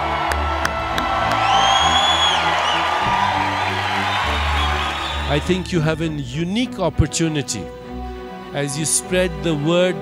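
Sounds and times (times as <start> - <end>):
audience cheering and whooping: 0.0 - 5.7.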